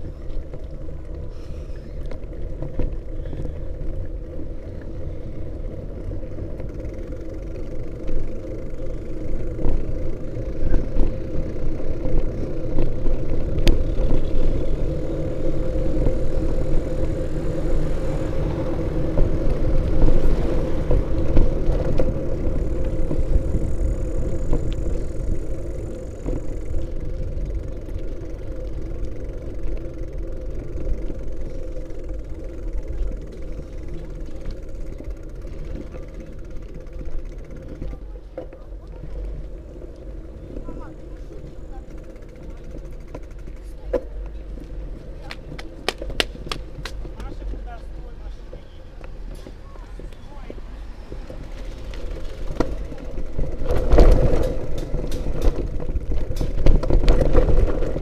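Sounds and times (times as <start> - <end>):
road rumble: 0.0 - 58.0
vehicle motor running: 0.0 - 58.0.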